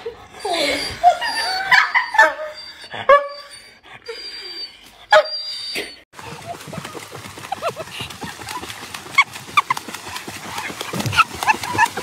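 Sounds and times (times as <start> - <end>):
person laughing hard: 6.2 - 9.8, 11.0 - 12.0.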